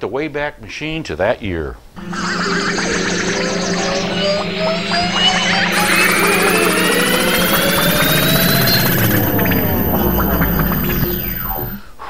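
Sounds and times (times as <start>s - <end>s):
layered tones sweeping upward: 2.0s - 11.8s
low electronic throb: 2.0s - 11.8s.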